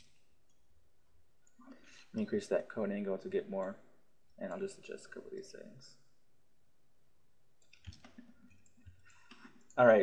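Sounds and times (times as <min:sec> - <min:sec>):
man speaking: 0:02.1 - 0:03.8, 0:04.4 - 0:06.0, 0:09.8 - 0:10.0
computer mouse clicks: 0:07.6 - 0:09.8.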